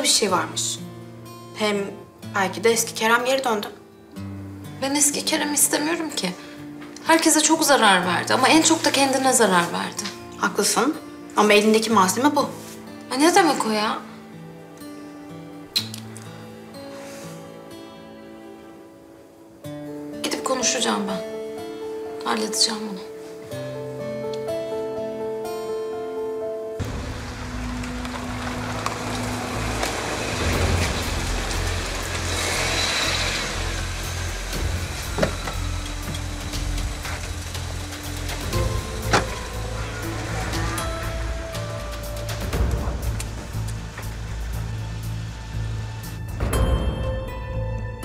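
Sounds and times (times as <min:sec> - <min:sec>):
soft background music: 0:00.0 - 0:48.0
car engine and tyre noise: 0:26.8 - 0:46.5.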